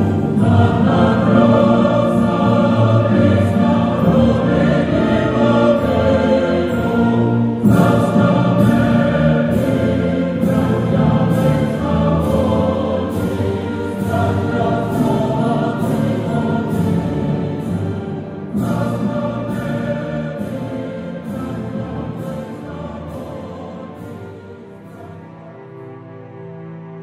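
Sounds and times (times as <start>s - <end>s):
music with choir-like voices: 0.0s - 27.0s.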